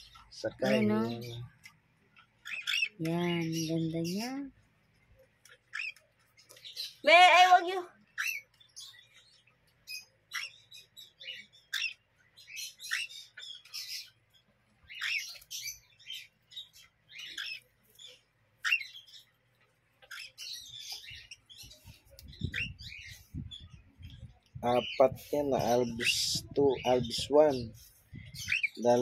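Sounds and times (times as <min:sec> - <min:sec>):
parrot chicks chirping and squawking: 0:00.0 - 0:29.0.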